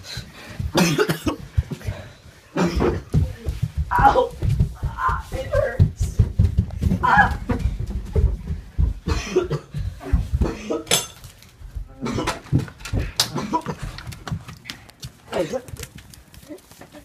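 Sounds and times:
hurried footsteps shuffling: 0:00.0 - 0:17.0
people grunting: 0:00.8 - 0:05.8, 0:06.9 - 0:07.8, 0:11.9 - 0:14.0
bumps and knocks: 0:02.6 - 0:10.8.

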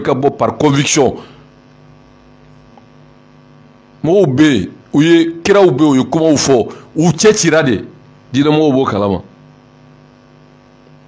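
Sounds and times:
man speaking: 0:00.0 - 0:01.4, 0:04.0 - 0:09.3
faint electrical mains hum: 0:00.0 - 0:11.0.

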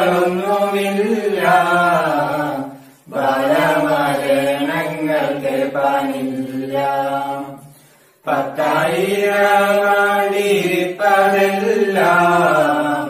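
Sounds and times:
group singing folk song: 0:00.0 - 0:13.0.

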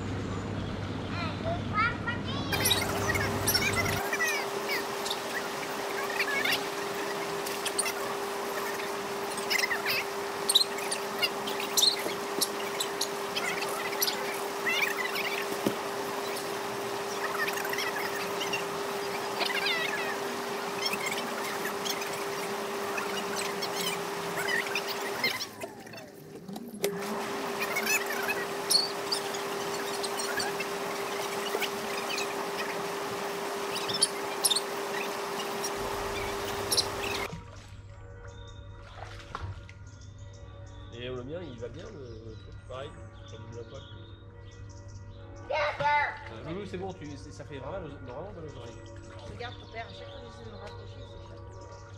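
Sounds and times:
small birds chirping: 0:00.3 - 0:26.2, 0:27.4 - 0:37.3, 0:39.8 - 0:45.7, 0:46.4 - 0:51.9
spa motor humming: 0:02.5 - 0:39.2, 0:46.4 - 0:51.9.

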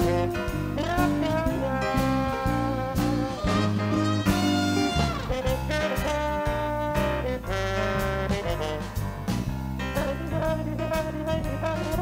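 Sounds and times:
bass: 0:00.0 - 0:12.0
drums: 0:00.0 - 0:12.0
piano: 0:00.0 - 0:12.0
saxophone: 0:00.0 - 0:12.0
trombone: 0:00.0 - 0:12.0.

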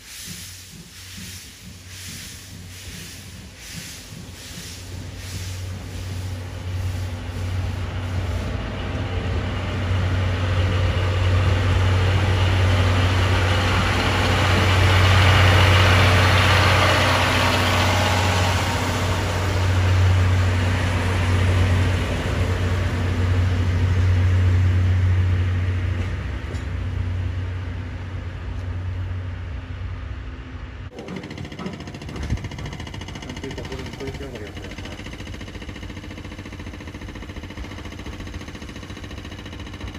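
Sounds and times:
train wheels rolling on rails: 0:00.0 - 0:30.2, 0:30.8 - 0:39.9
diesel locomotive engine drone: 0:00.0 - 0:39.9.

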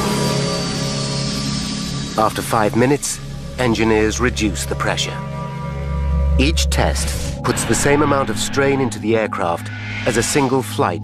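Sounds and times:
held chord background music: 0:00.0 - 0:11.0
even hiss: 0:06.5 - 0:11.0.

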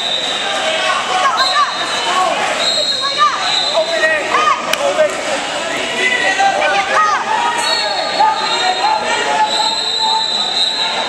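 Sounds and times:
spectators calling out: 0:00.0 - 0:11.0.

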